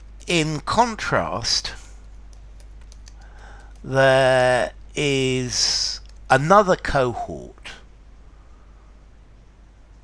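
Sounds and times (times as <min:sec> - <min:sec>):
typing on a computer keyboard: 0:02.0 - 0:03.9, 0:06.0 - 0:06.3.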